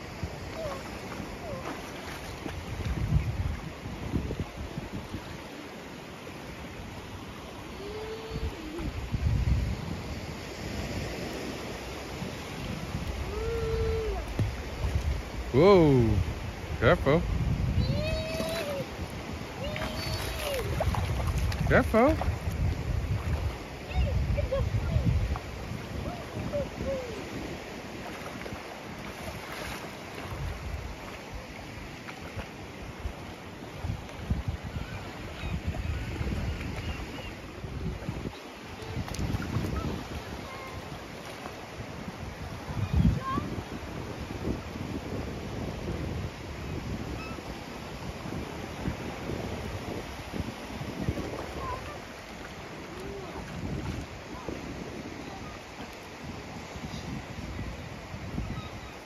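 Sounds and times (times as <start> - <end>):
wind buffeting microphone: 0.0 - 5.5, 7.7 - 59.0
sea wash: 0.0 - 59.0
surf: 0.0 - 59.0
water lapping and splashing: 0.0 - 59.0.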